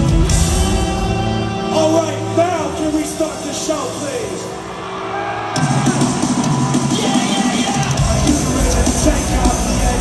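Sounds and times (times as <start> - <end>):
live rock band through pa: 0.0 - 10.0.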